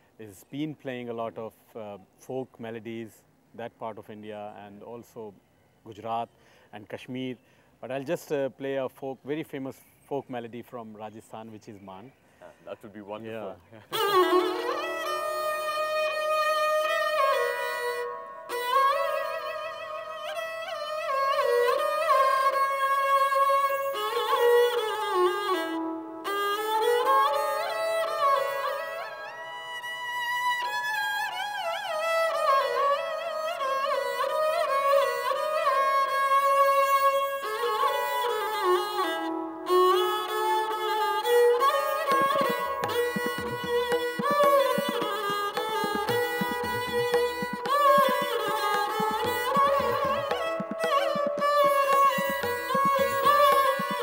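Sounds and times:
bowed sarangi folk melody: 13.8s - 54.0s.

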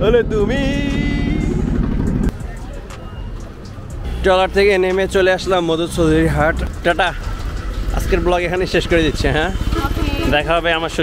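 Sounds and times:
low rumble: 0.0s - 2.5s
street traffic passing: 0.0s - 11.0s.

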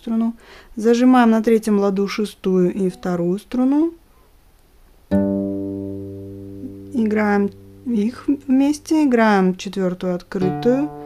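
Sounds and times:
classical guitar strings plucked: 5.1s - 8.9s, 10.3s - 11.0s.

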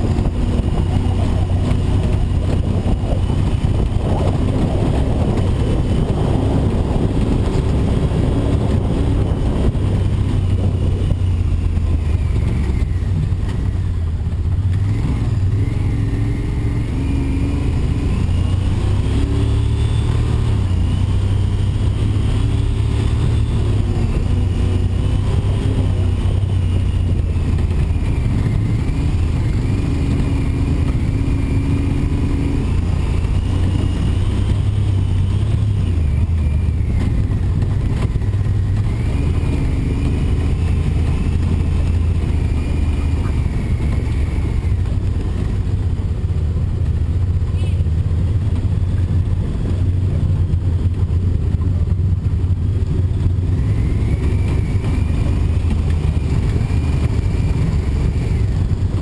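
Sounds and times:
vehicle engine running: 0.0s - 59.0s.

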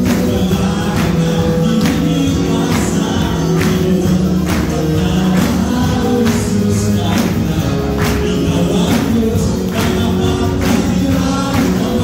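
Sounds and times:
group singing praise song: 0.0s - 12.0s
instrumental accompaniment: 0.0s - 12.0s
steady beat: 0.0s - 12.0s.

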